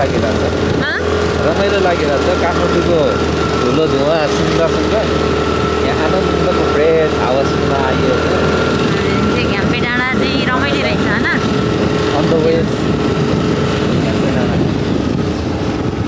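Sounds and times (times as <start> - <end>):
scooter engine running: 0.0 - 16.0
wind and road noise: 0.0 - 16.0.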